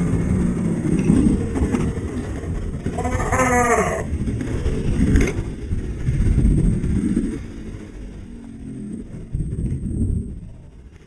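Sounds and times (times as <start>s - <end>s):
low rumbling noise: 0.0s - 11.0s
man groaning: 3.0s - 4.1s.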